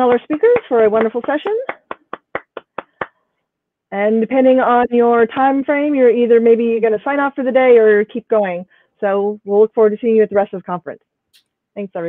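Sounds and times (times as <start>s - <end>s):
person clapping hands: 0.4s - 3.2s.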